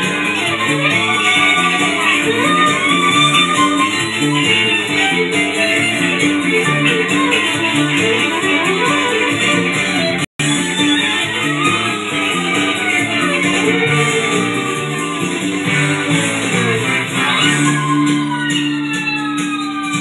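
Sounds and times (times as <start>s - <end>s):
instrumental band with guitar: 0.0s - 20.0s.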